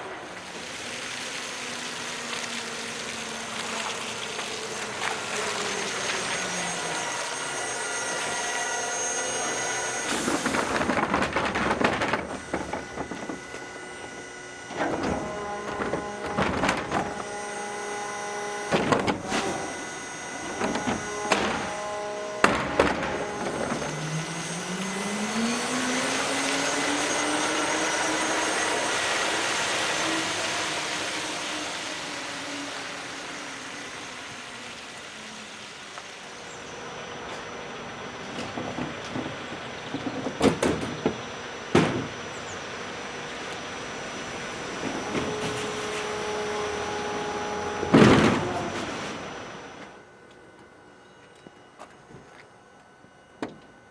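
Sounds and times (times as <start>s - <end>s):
steady machine whine: 0.0s - 53.9s
truck motor whine rising: 0.0s - 53.9s
bin lift knocks and thunks: 38.5s - 42.2s, 47.8s - 48.9s.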